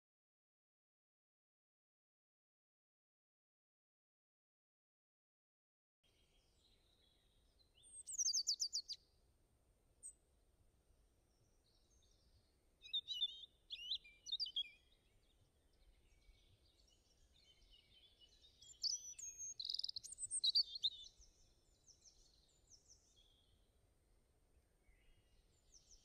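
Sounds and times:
songbirds chirping: 6.1s - 26.0s.

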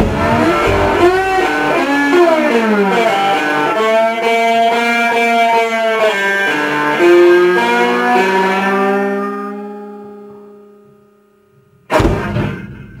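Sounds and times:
loud thump: 0.0s - 1.8s, 11.9s - 13.0s
blues guitar playing: 0.0s - 11.2s.

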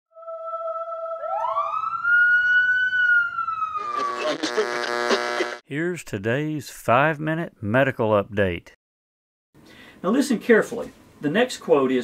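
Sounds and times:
siren-like gliding tone: 0.2s - 5.4s
steady electronic tone: 3.8s - 5.6s.

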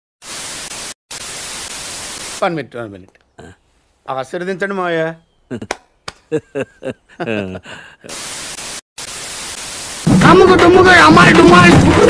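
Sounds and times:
television static hiss: 0.3s - 2.5s, 8.1s - 10.0s.

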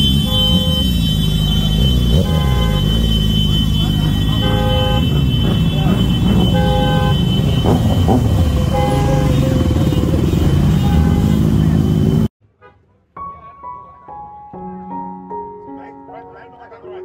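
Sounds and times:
motorcycle engines rumbling: 0.0s - 12.3s
vehicle horn honking: 0.0s - 13.1s
crowd voices: 2.8s - 12.3s.

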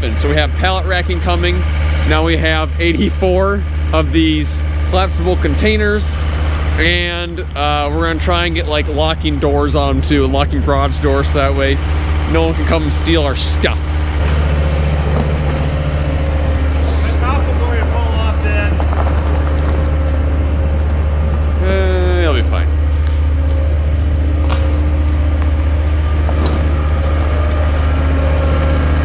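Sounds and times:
diesel engine running: 0.0s - 29.0s
falling whine: 0.0s - 29.0s.

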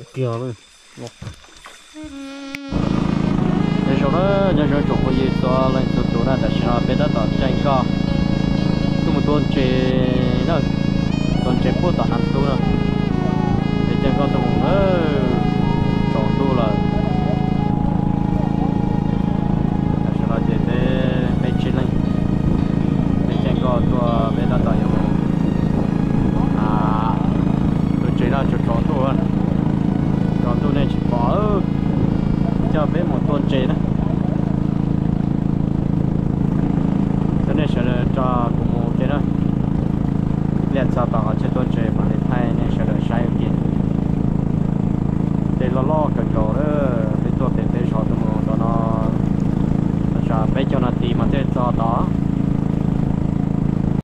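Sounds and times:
people talking: 0.0s - 1.4s, 3.8s - 7.9s, 9.0s - 10.7s, 11.4s - 17.8s, 20.0s - 22.0s, 23.3s - 25.1s, 26.4s - 29.6s, 30.4s - 31.7s, 32.4s - 34.6s, 37.4s - 39.3s, 40.7s - 43.8s, 45.6s - 49.2s, 50.2s - 52.1s
boat motor droning: 0.0s - 54.0s.

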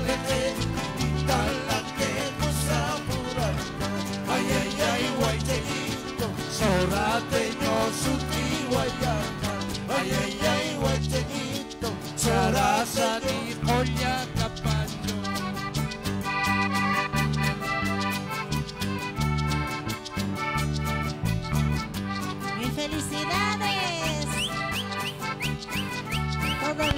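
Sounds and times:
electric bass beat: 0.0s - 5.8s, 13.6s - 22.2s, 23.7s - 26.9s
guitars: 0.0s - 26.9s
live band music: 0.0s - 26.9s
lead melody: 14.0s - 26.9s.

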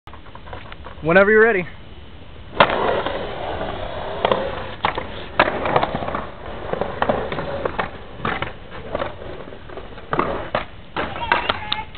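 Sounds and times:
skateboard wheels rolling: 0.1s - 1.6s, 2.4s - 11.9s
skateboard clacks: 2.6s - 11.9s.

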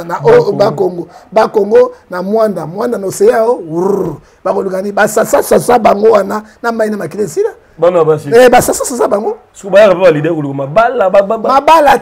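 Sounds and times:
man speaking fast: 0.0s - 12.0s.

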